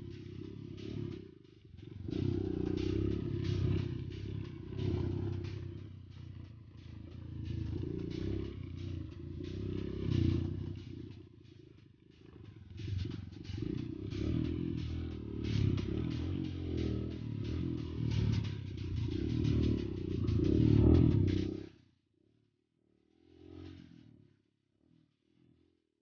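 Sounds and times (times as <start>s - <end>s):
dirt bike engine: 0.0s - 21.7s.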